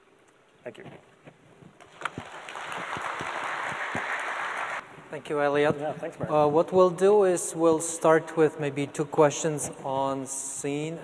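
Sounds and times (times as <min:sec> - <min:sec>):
small audience applauding: 0:01.8 - 0:04.8.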